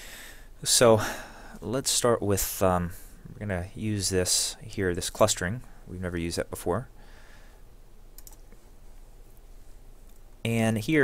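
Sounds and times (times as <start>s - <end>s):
low steady hum: 0.0s - 11.0s
faint computer mouse clicks: 8.2s - 8.6s.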